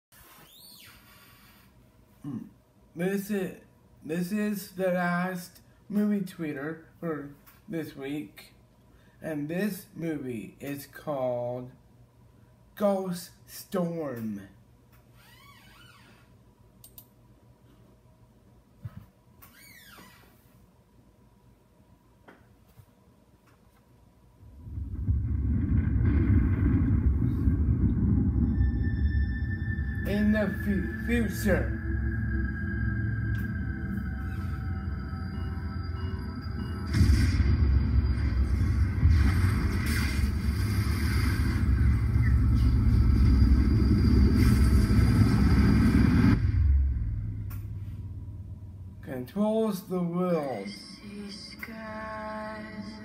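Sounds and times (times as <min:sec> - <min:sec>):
deep trailer soundtrack rumble: 0:24.4 - 0:49.4.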